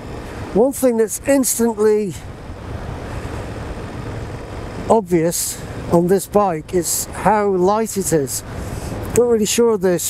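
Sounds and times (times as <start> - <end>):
motorcycle engine and road hum: 0.0 - 10.0
wind rush on microphone: 0.0 - 10.0.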